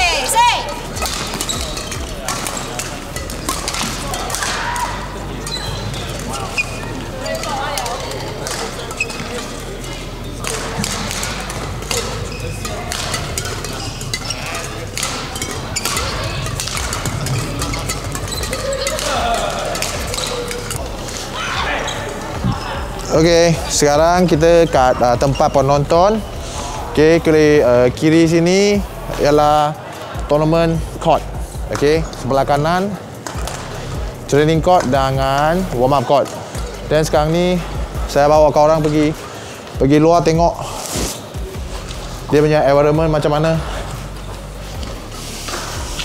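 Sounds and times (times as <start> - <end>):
rackets striking shuttlecocks: 0.0 - 26.4, 32.9 - 35.2, 43.5 - 46.0
court shoes squeaking: 0.0 - 46.0
voices in background: 0.0 - 46.0.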